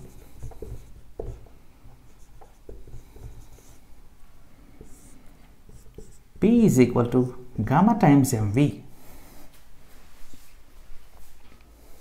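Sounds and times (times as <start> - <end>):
marker pen writing on whiteboard: 0.0 - 4.0, 4.6 - 6.5.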